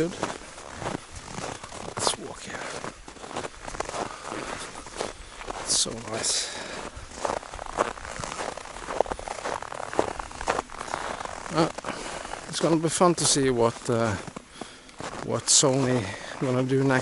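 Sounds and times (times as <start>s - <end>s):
footsteps crunching in snow: 0.0s - 17.0s.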